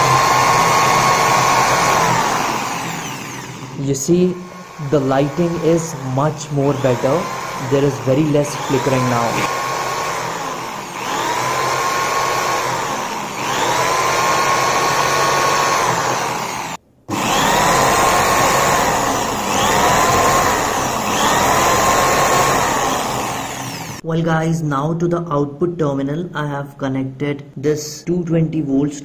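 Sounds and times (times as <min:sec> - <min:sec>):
electric drill whining: 0:00.0 - 0:24.0.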